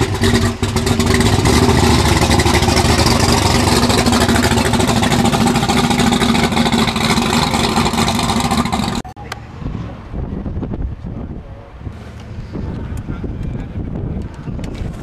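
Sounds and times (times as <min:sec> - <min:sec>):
loud car engine running: 0:00.0 - 0:09.1.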